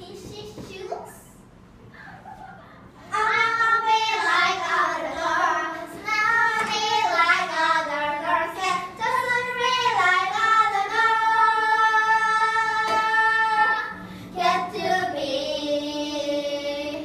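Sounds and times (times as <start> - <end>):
girls singing together: 3.0 - 17.0.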